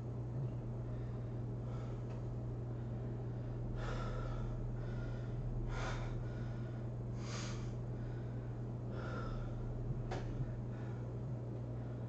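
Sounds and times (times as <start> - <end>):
steady low hum: 0.0 - 12.0
man breathing hard: 0.8 - 12.0.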